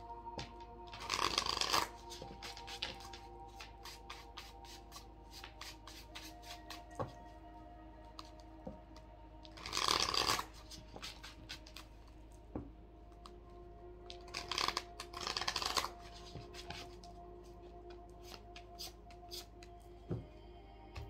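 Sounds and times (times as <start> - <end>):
cards being shuffled: 0.4 - 7.2, 9.5 - 12.0, 14.1 - 17.1, 18.2 - 19.7.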